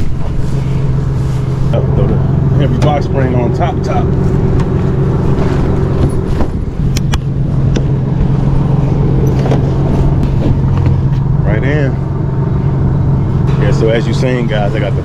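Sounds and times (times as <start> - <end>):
vehicle engine idling: 0.0 - 15.0
knocks and rustles: 4.2 - 8.3, 9.2 - 11.3.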